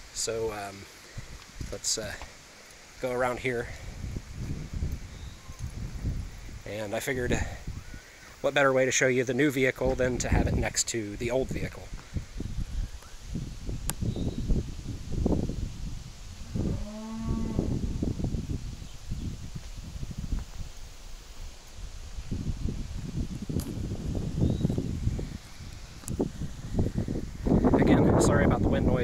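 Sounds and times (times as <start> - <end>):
wind buffeting microphone: 3.3 - 8.1, 9.8 - 29.0
cow mooing: 16.6 - 17.8.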